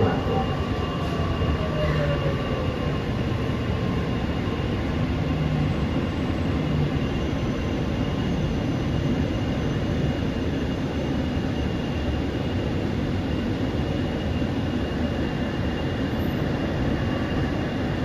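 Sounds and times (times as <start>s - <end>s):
wheels rumbling on rail: 0.0s - 18.0s.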